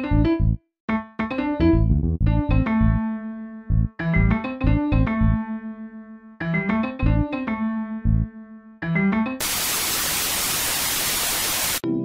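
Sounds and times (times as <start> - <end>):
white noise static burst: 9.4 - 11.8.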